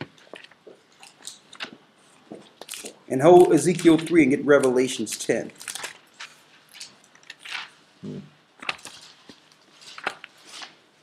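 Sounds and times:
paper pages rustling: 0.0s - 7.9s, 8.6s - 11.0s.

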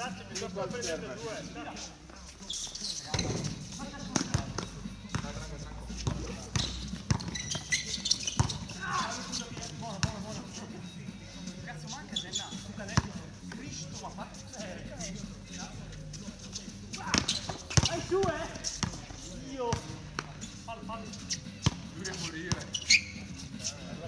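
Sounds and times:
basketball bouncing on hard court: 6.0s - 7.6s, 8.3s - 8.6s.

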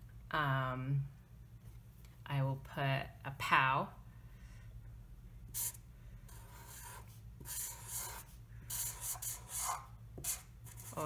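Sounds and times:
marker drawing on paper: 5.5s - 11.0s.

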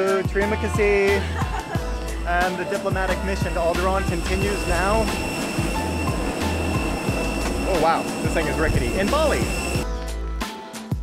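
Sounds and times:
high jet whine: 1.8s - 9.8s
jet engine rush: 2.3s - 9.8s.

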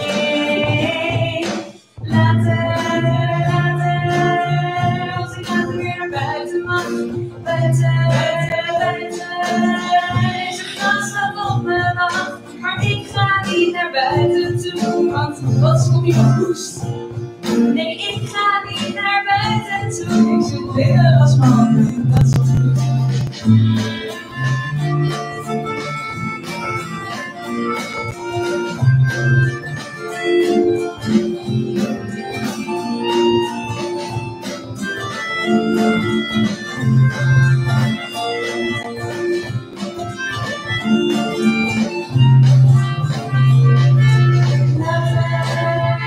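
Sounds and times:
acoustic guitar: 0.0s - 46.0s
melodica melody: 2.1s - 46.0s.

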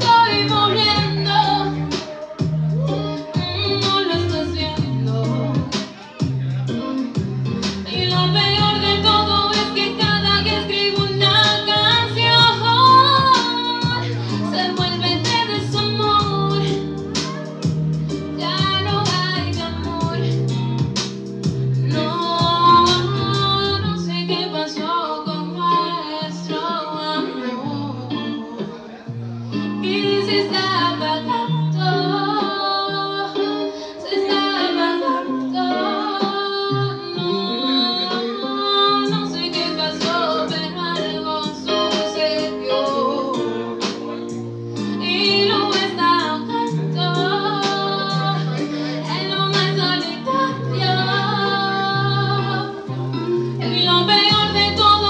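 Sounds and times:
woman singing: 0.0s - 6.3s, 6.9s - 21.0s, 21.8s - 28.8s, 29.6s - 44.2s, 44.8s - 55.0s
backing music with bass and beat: 0.0s - 24.7s, 27.2s - 55.0s.

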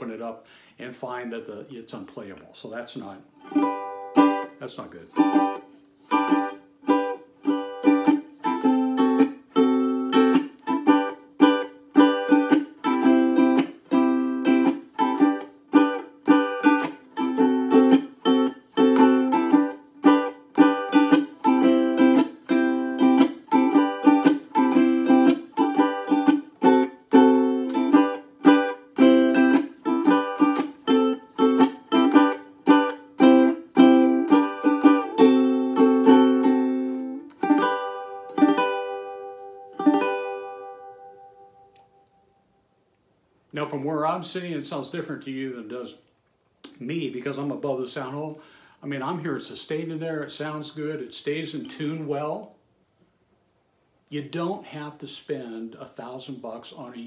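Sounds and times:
ukulele strummed chords: 3.0s - 42.4s.

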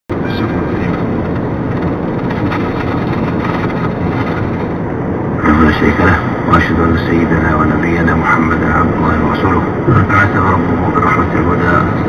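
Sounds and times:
car road and engine noise: 0.1s - 12.0s.

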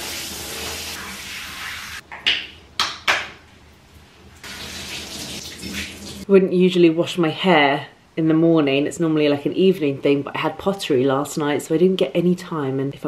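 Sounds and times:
shower water spraying into bathtub: 0.0s - 2.0s, 4.4s - 6.2s.

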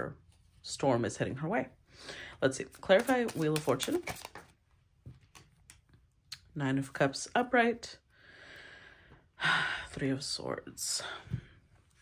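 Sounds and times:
cards clicking and rustling: 2.7s - 4.5s.

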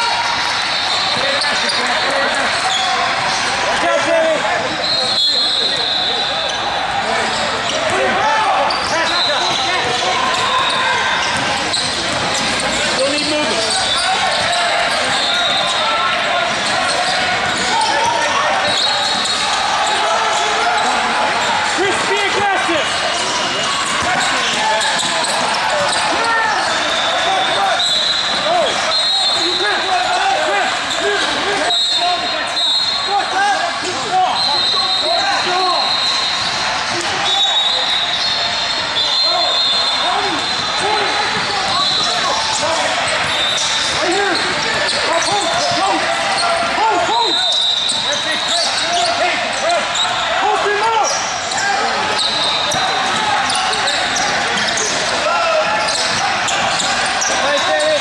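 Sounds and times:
sneakers squeaking on court: 0.4s - 3.4s, 4.8s - 21.6s, 22.8s - 33.4s, 34.3s - 50.3s, 51.0s - 58.0s
basketball bouncing: 11.2s - 12.7s.

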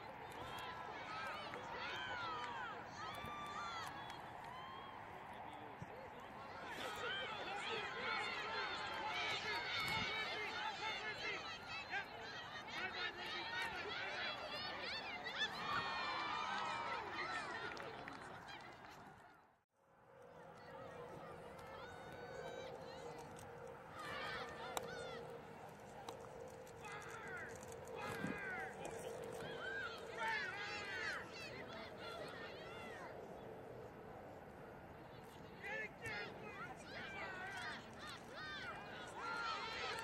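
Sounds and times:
many voices shouting: 0.0s - 18.8s, 20.6s - 33.2s, 35.6s - 40.0s.

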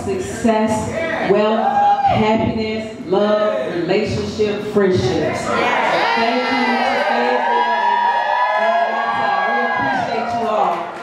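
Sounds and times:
crowd cheering and whooping: 1.6s - 2.2s, 5.6s - 11.0s.

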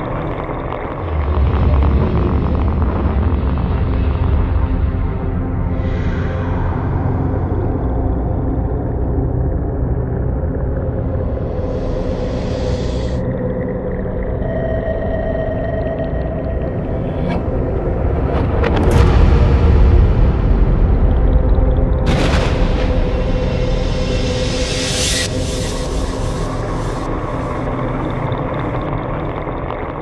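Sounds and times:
dark droning soundtrack music: 0.0s - 30.0s
deep rumble: 0.0s - 30.0s.

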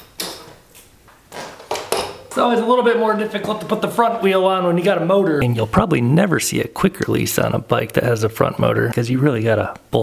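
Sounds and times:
bike wheel knocks and scuffs: 1.3s - 2.4s.

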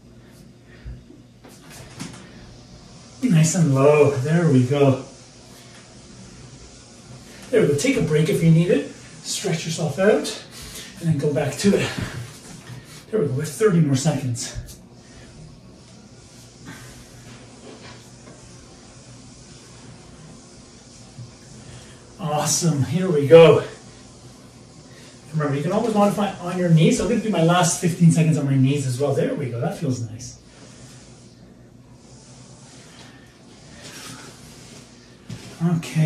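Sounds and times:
faint steady hiss: 0.0s - 36.0s
soft brushes on foam mat: 0.0s - 36.0s
person breathing: 10.5s - 11.0s.

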